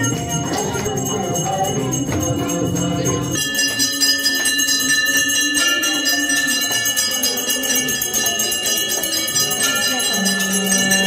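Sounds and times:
temple bells ringing rapidly: 0:00.0 - 0:11.0.

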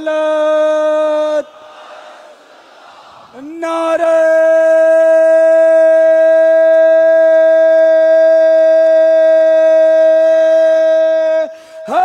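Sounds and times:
man calling a long note over loudspeakers: 0:00.0 - 0:01.5, 0:03.3 - 0:12.0.

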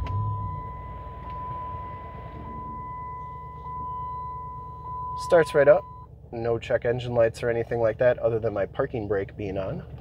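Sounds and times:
car engine starting and idling: 0:00.0 - 0:10.0
high electronic chime tone: 0:00.2 - 0:06.1.

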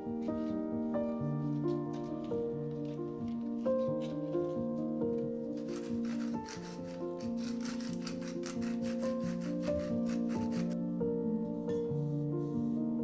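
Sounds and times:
soft instrumental music: 0:00.0 - 0:13.0
hands rubbing zucchini on wooden board: 0:05.5 - 0:10.8.

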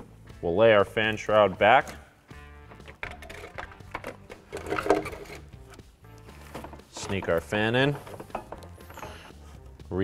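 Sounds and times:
background music: 0:00.0 - 0:10.0
plastic shroud scraping and knocking: 0:02.8 - 0:05.5, 0:06.3 - 0:09.3.

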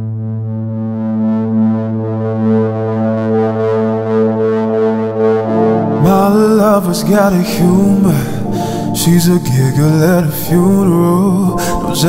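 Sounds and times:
synthesizer drone: 0:00.0 - 0:12.0.

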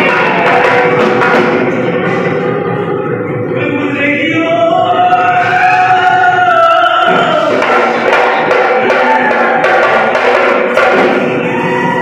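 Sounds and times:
dhol drums: 0:00.0 - 0:02.3, 0:07.1 - 0:12.0.

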